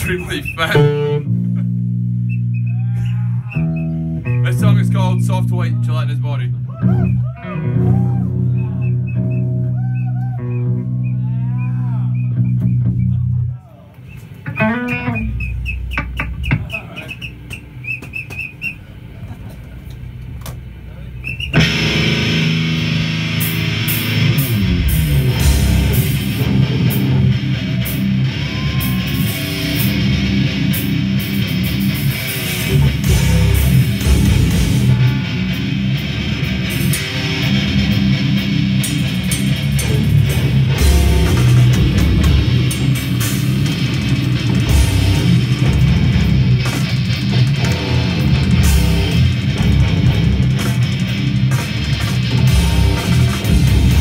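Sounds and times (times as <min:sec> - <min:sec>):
pitch-bending guitar squeals: 0:00.0 - 0:05.9, 0:06.7 - 0:18.9, 0:21.2 - 0:46.7
death metal band playing: 0:00.0 - 0:54.0
fast drumming: 0:15.9 - 0:18.6, 0:38.9 - 0:54.0
distorted low guitar chord: 0:21.6 - 0:28.4, 0:29.4 - 0:54.0.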